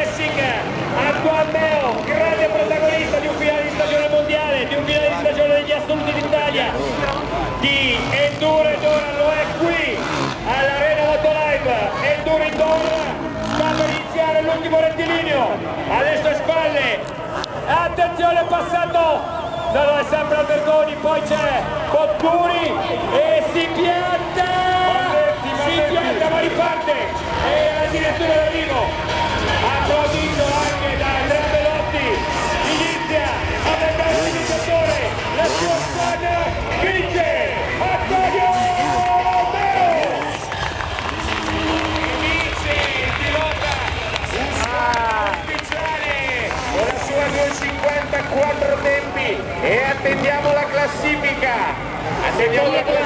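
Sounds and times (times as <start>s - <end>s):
crowd chatter: 0.0s - 53.0s
dirt bike engines revving: 0.0s - 53.0s
man on public-address system: 0.0s - 53.0s
men talking: 0.0s - 53.0s.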